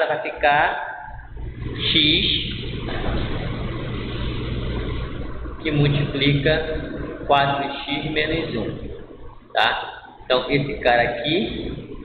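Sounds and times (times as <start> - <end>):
even hiss-like noise: 0.0 - 12.0
steady low hum: 0.0 - 12.0.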